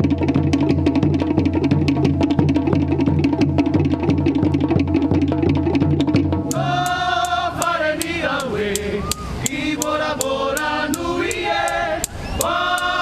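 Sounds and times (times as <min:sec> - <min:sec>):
sharp percussion beat: 0:00.0 - 0:13.0
group chanting held notes: 0:06.5 - 0:13.0.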